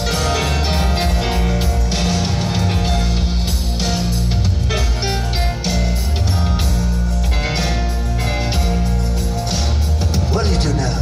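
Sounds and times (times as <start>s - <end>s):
grand piano: 0.0s - 11.0s
low bass notes: 0.0s - 11.0s.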